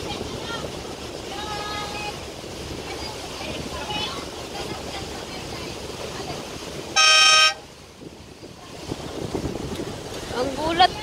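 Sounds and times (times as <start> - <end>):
rushing water: 0.0 - 11.0
wind: 0.0 - 11.0
boat horn toot: 6.8 - 7.8.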